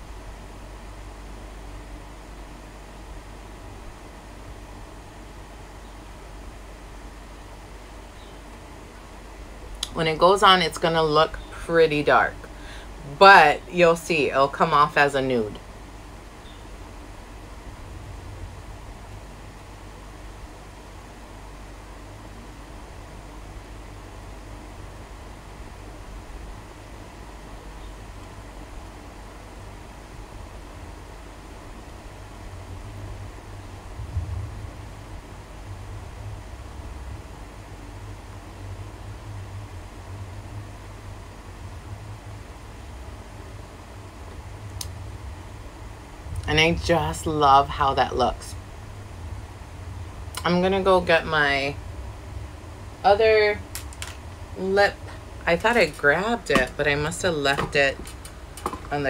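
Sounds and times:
low rumble: 15.3 - 24.6, 31.9 - 59.0.

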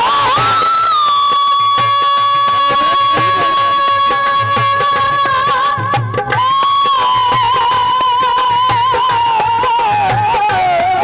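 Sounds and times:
folk devotional melody: 0.0 - 11.0
steady drum beat: 0.0 - 11.0.

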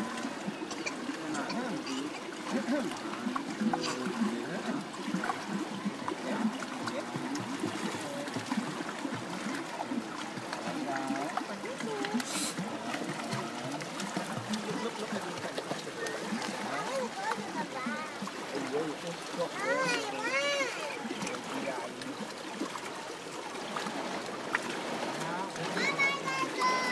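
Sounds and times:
many voices chattering: 0.0 - 24.2, 24.9 - 26.9
water splashing: 0.0 - 26.9
children calling out: 25.8 - 26.9.

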